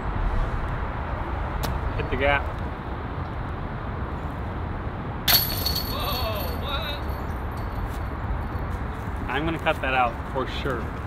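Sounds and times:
sharp ringing clink: 5.3s - 8.0s.

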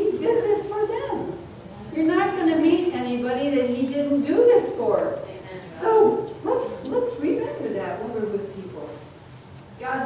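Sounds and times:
woman speaking: 0.0s - 9.0s, 9.8s - 10.0s.

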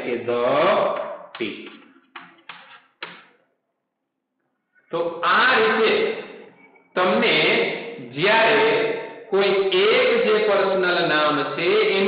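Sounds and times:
man speaking: 0.0s - 2.0s, 4.8s - 12.0s.

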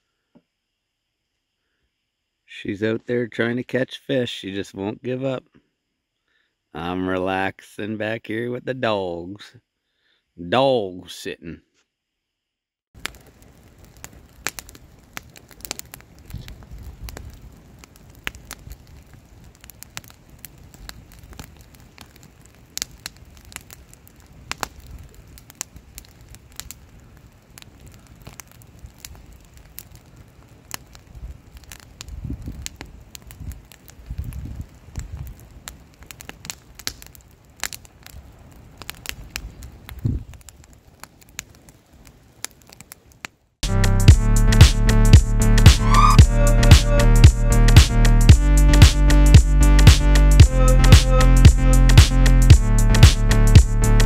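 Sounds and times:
low rushing fire swells: 13.0s - 42.8s, 43.6s - 54.0s
campfire crackling and popping: 13.0s - 54.0s.

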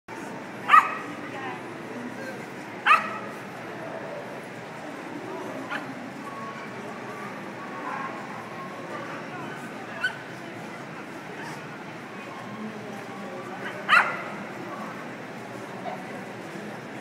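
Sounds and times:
crowd murmur: 0.1s - 17.0s
dog barking: 0.7s - 1.0s, 2.8s - 3.2s, 13.9s - 14.3s.

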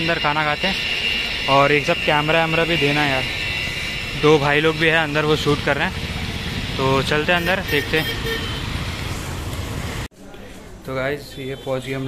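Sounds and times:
passing traffic: 0.0s - 12.0s.

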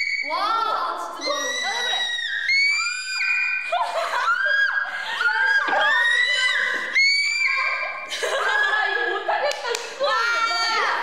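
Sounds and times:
women shrieking high notes: 0.0s - 8.7s.

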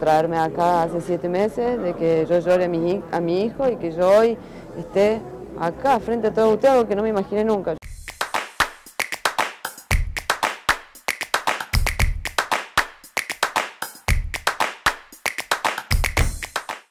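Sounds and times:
percussive jingle with clap-like hits: 7.9s - 16.9s.

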